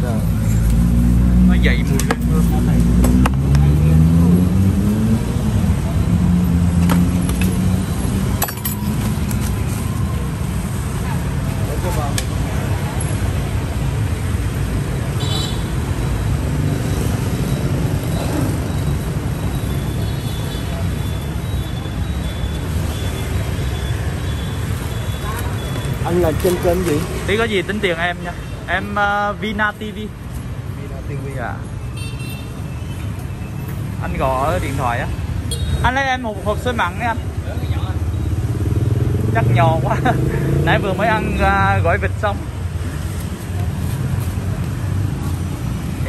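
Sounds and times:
motorbike engines in traffic: 0:00.0 - 0:46.0.

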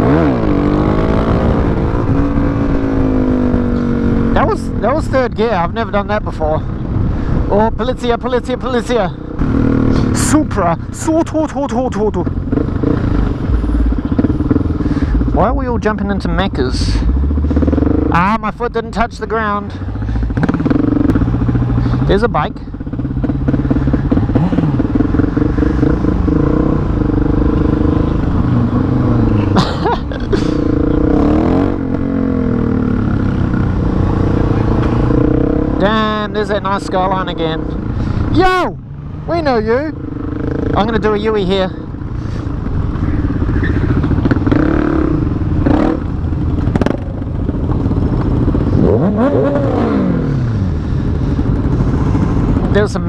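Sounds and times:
motorcycle engine cruising: 0:00.0 - 0:53.0.

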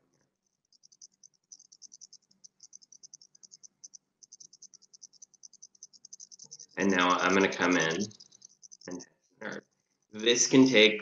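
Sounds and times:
high-pitched insect-like chirping: 0:00.4 - 0:10.6
faint low hum: 0:00.8 - 0:11.0
man's voice: 0:06.8 - 0:08.1, 0:10.2 - 0:11.0.

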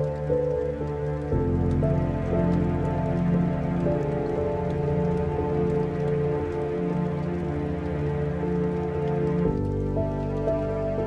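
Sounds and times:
rain falling: 0:00.0 - 0:11.0
slow melancholic piano music: 0:00.0 - 0:11.0.

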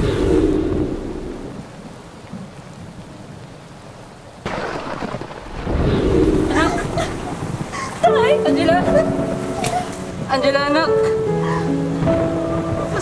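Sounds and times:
thunder rumbling: 0:00.0 - 0:03.5, 0:04.4 - 0:13.0
heavy rain on pavement: 0:00.0 - 0:13.0.

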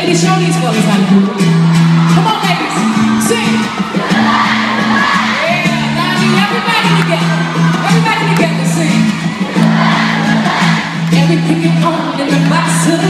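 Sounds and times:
live band playing pop music: 0:00.0 - 0:13.0
people whooping: 0:01.4 - 0:06.2, 0:06.8 - 0:08.3
crowd singing along: 0:03.1 - 0:06.6, 0:09.0 - 0:13.0.

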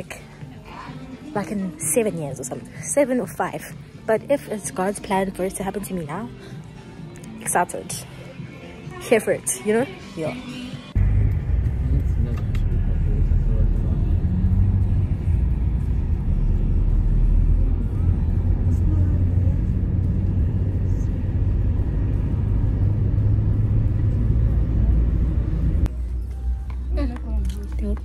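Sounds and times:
car cabin engine and road rumble: 0:11.0 - 0:28.0.

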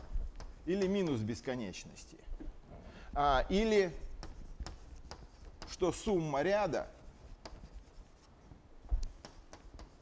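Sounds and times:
chalk tapping and scratching: 0:00.0 - 0:01.2, 0:03.6 - 0:10.0.

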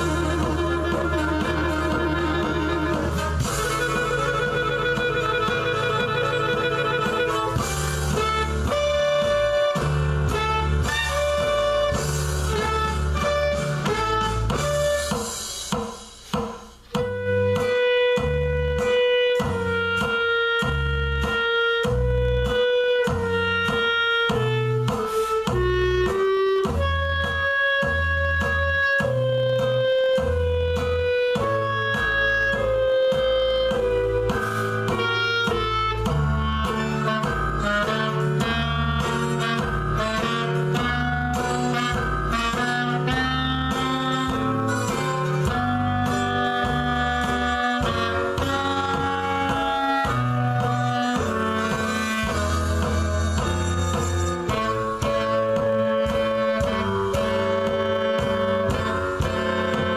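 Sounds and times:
clarinet melody: 0:00.0 - 0:15.8, 0:16.9 - 0:59.9.

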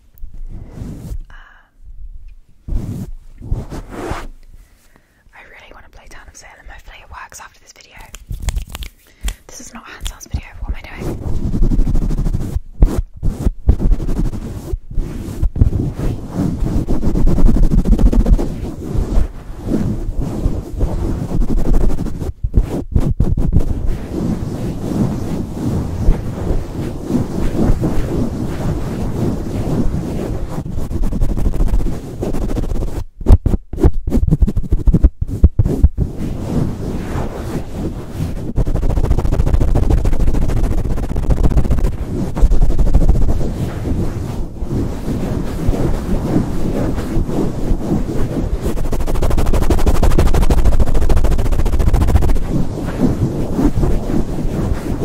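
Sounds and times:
hand rubbing microphone grille: 0:00.0 - 0:01.5, 0:02.6 - 0:05.1, 0:05.9 - 0:55.0.

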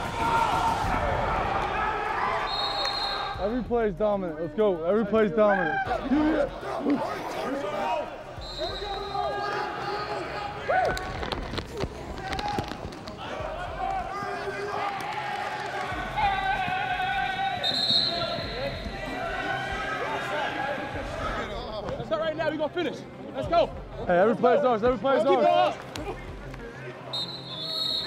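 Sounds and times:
voices shouting and chattering: 0:00.0 - 0:28.0.

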